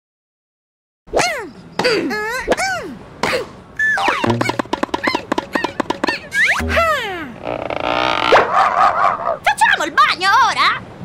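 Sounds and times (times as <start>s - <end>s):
cartoon squeaks: 3.8s - 9.5s.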